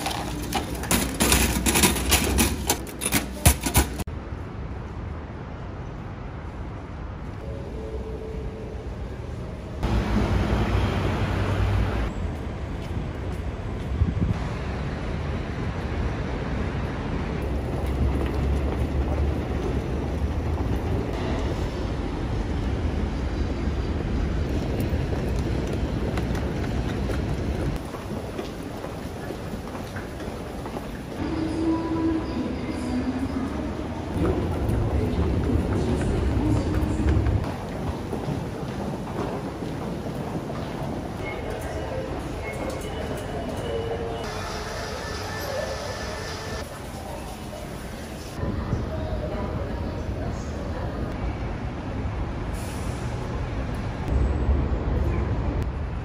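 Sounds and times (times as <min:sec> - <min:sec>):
road traffic rumble: 0:00.0 - 0:56.0.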